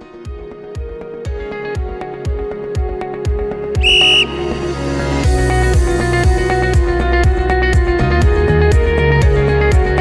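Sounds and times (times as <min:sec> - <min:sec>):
sports whistle blast: 0:03.8 - 0:04.9.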